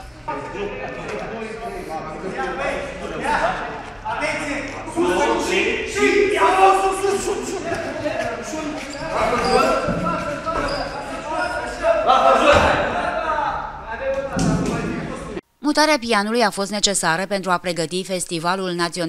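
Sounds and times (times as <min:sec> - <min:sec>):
men calling out and talking: 0:00.0 - 0:15.4.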